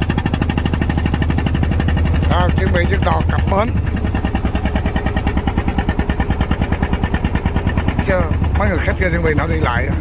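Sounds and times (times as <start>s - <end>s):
boat engine chugging: 0.0s - 10.0s.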